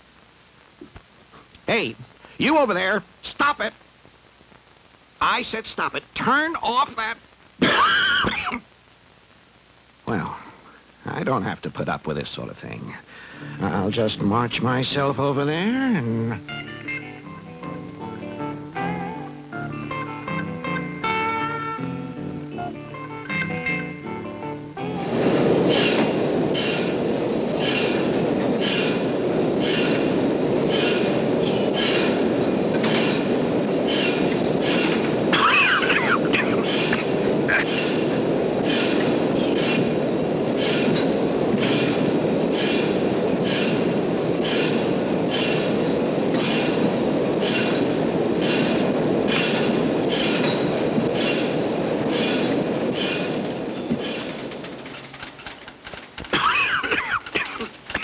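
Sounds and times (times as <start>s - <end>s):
guitar music: 13.3s - 42.1s
factory machinery rumble and clatter: 25.0s - 58.0s.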